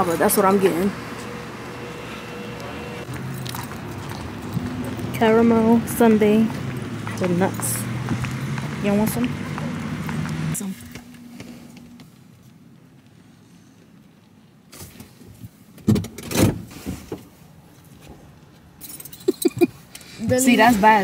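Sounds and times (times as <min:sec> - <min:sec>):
keys clicking and jingling: 0:03.2 - 0:04.2, 0:18.8 - 0:19.7.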